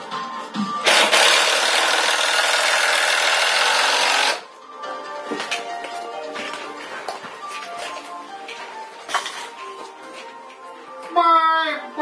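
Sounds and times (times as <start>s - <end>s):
cordless drill driving screw: 0.8s - 4.4s.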